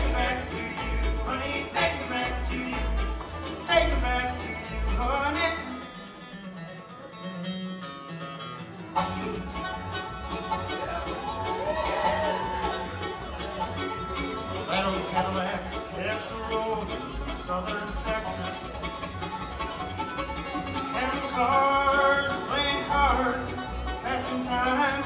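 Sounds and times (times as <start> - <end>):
upright bass: 0.0 - 5.9, 8.9 - 25.0
bluegrass band playing: 0.0 - 25.0
rapid banjo and mandolin picking: 0.0 - 25.0.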